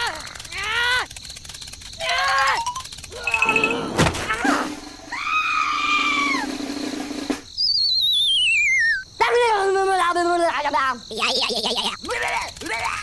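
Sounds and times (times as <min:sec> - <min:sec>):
falling wobbling whistle: 0:07.6 - 0:09.0.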